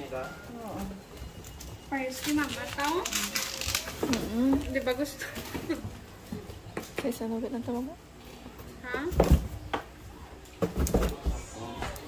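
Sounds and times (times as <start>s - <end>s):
packaging rustling: 1.2s - 5.7s.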